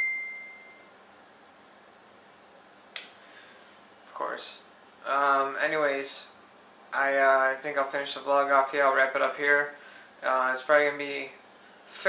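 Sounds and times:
high ding: 0:00.0 - 0:00.9.

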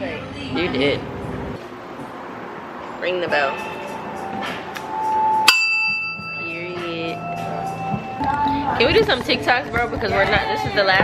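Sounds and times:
small bell ding: 0:05.4 - 0:08.1.

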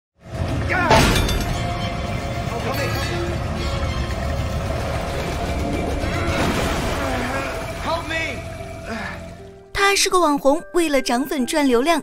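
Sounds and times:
film score music: 0:00.2 - 0:12.0.

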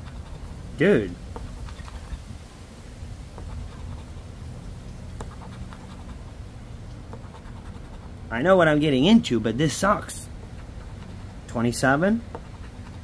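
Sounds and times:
coin scratching lottery ticket: 0:00.0 - 0:00.5, 0:01.4 - 0:02.2, 0:05.2 - 0:06.2, 0:07.2 - 0:08.1, 0:12.3 - 0:13.0.

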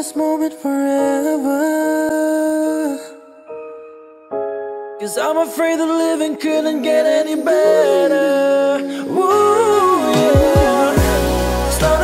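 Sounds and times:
soft backing music: 0:00.0 - 0:12.0.

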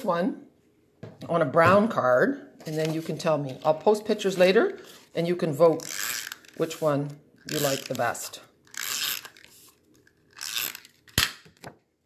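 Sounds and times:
paper rustling: 0:02.6 - 0:05.2.

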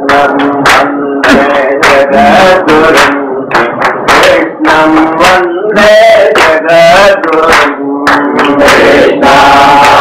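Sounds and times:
crowd chanting in unison: 0:08.3 - 0:10.0.

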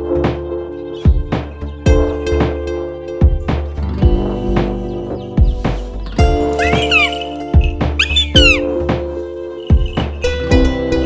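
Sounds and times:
music with drum beat: 0:01.1 - 0:11.0
high swooping cries: 0:04.3 - 0:10.5.

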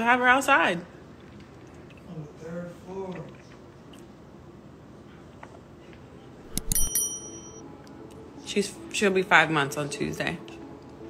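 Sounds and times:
small bell ringing: 0:06.5 - 0:07.6.

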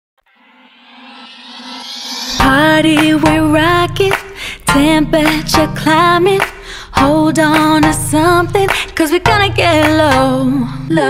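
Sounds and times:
synth build-up with swept hiss: 0:00.2 - 0:03.2.

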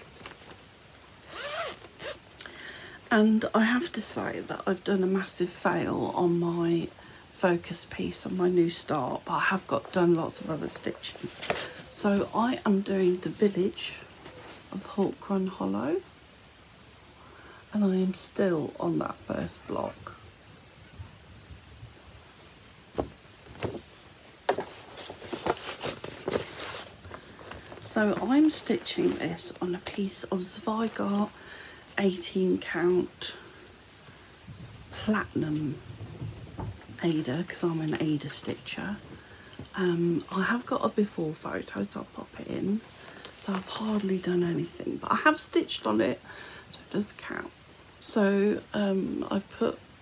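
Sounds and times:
zip pulled open: 0:01.2 - 0:02.2
handling knocks and rustles: 0:10.6 - 0:13.6, 0:22.3 - 0:31.3.

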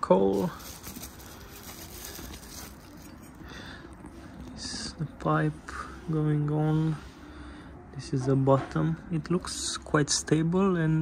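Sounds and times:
bubble wrap rustling: 0:00.0 - 0:04.0.

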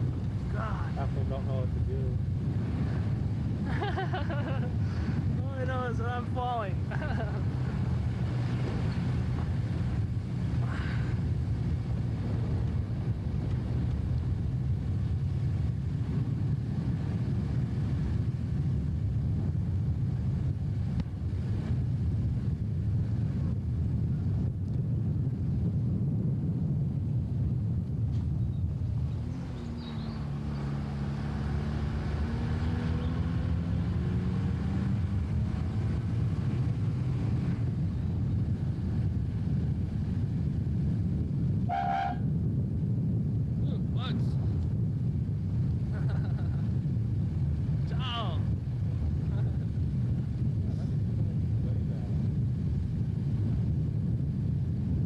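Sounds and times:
engine and road rumble: 0:00.0 - 0:55.0
rising engine tone: 0:29.0 - 0:36.5.

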